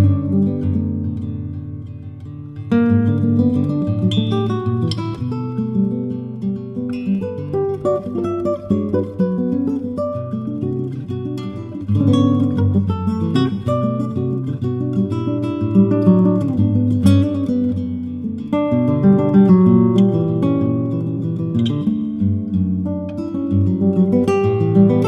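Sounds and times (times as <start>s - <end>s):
fingerstyle acoustic guitar: 0.0s - 25.0s.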